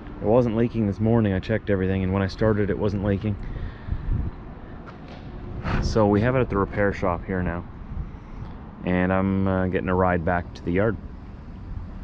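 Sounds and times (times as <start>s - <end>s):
low outdoor background noise: 0.0s - 12.0s
man speaking: 0.2s - 3.4s, 5.6s - 7.7s, 8.8s - 11.0s.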